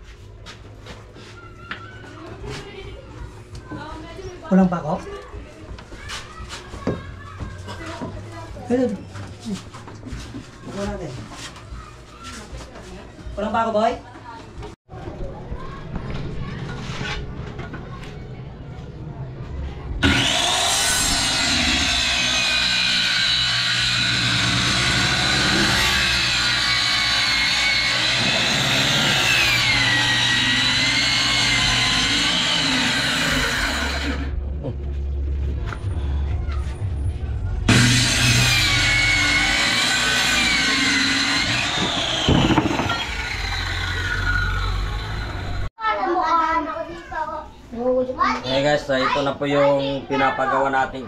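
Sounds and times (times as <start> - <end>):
circular saw cutting wood: 20.0 - 34.4, 37.7 - 45.7.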